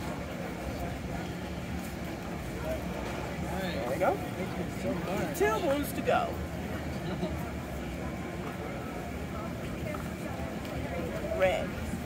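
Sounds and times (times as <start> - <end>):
distant chatter of people: 0.0 - 12.0.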